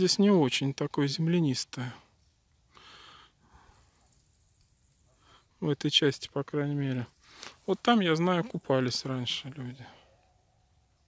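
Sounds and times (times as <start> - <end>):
faint short breath: 2.7 - 4.1, 7.2 - 7.6.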